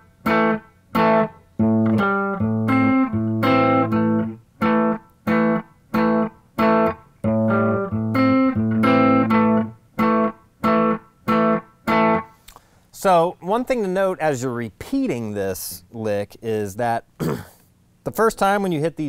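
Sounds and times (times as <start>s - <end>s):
clean electric guitar boogie riff: 0.0s - 12.5s.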